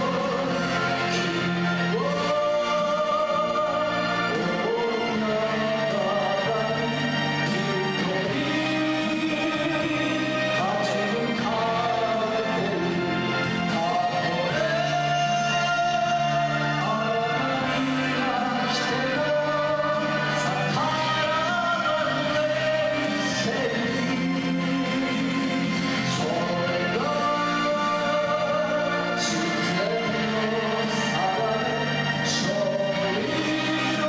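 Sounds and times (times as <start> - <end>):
karaoke backing track: 0.0 - 34.0
man singing into microphone: 0.0 - 34.0.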